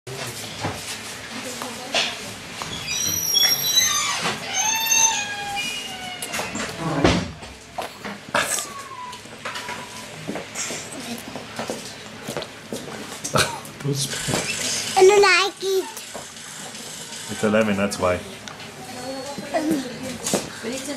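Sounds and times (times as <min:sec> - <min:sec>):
toddler squealing cries: 0:02.9 - 0:06.5.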